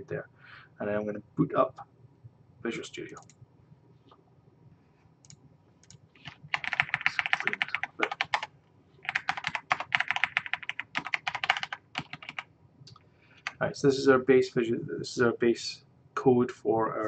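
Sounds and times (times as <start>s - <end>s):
fast typing on keyboard: 5.9s - 12.5s.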